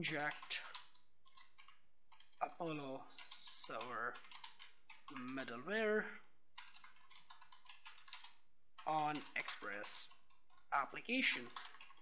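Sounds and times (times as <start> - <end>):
computer keyboard typing: 0.0 - 12.0.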